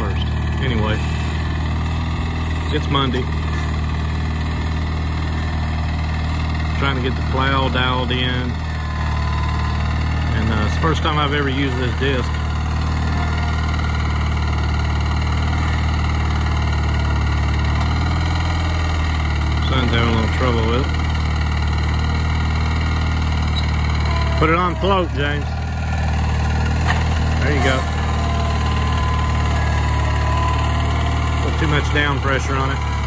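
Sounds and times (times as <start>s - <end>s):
garden tractor engine running: 0.0s - 33.0s.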